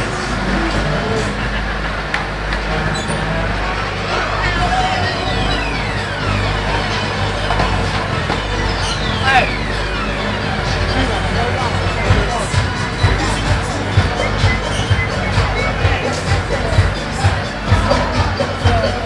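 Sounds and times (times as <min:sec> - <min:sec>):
crowd talking: 0:00.0 - 0:19.0
faint music: 0:00.0 - 0:19.0
low machinery hum: 0:00.0 - 0:19.0
downward gliding whistle tone: 0:03.9 - 0:17.4.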